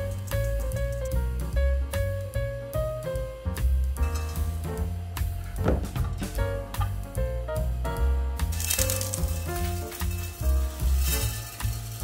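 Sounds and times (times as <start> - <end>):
background music with steady beat: 0.0 - 12.0
gravel poured into glass jar: 8.5 - 12.0.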